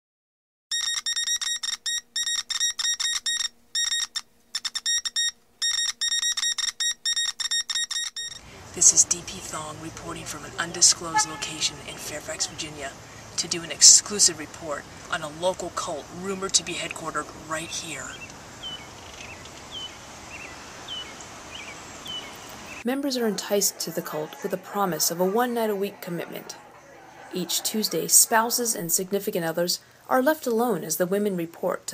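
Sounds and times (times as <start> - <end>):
high-pitched electronic beeps: 0.7 - 8.4
songbird chirping: 8.3 - 29.1
background hiss: 8.4 - 24.6, 26.3 - 31.9.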